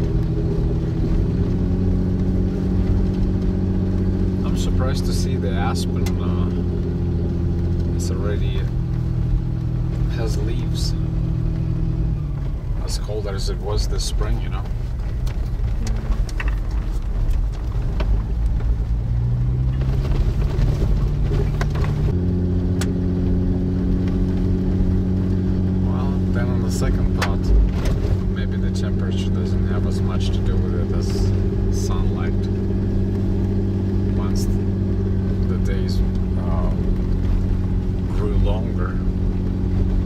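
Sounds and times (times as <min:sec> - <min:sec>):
car engine and tyre noise: 0:00.0 - 0:40.0
clicks and rattles from road: 0:00.0 - 0:40.0.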